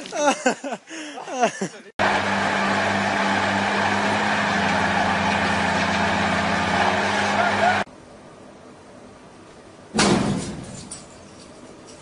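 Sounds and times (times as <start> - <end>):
heavy truck engine running: 2.0 - 7.9.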